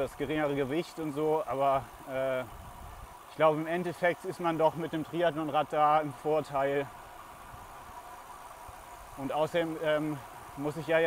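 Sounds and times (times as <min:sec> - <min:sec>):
bicycle road noise: 0:00.0 - 0:11.0.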